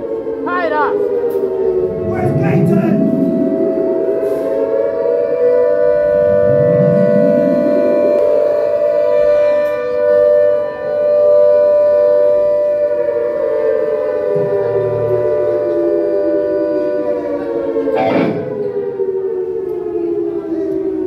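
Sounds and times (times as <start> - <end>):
siren-like droning tone: 0.0 - 21.0.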